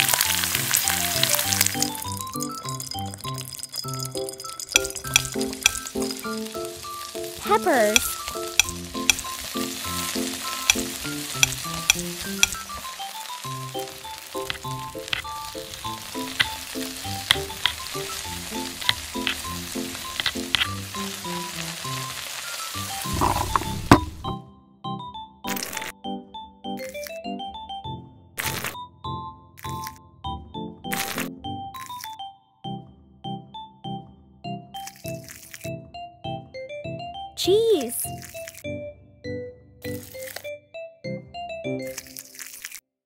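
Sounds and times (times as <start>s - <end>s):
oil sizzling in skillet: 0.0s - 24.2s
spoon clicking against pan: 1.8s - 6.3s, 7.9s - 9.3s, 10.5s - 12.6s.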